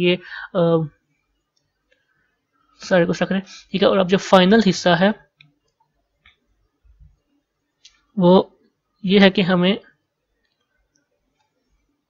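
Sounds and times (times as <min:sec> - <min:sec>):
computer mouse clicks: 0:10.4 - 0:11.8.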